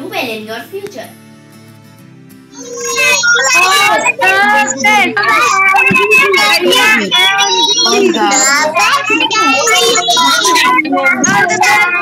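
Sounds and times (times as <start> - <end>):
child singing: 2.6 - 12.0.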